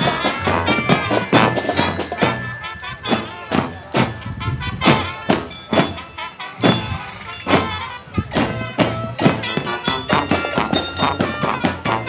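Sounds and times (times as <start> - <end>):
drum and cymbal hits: 0.0 - 12.0.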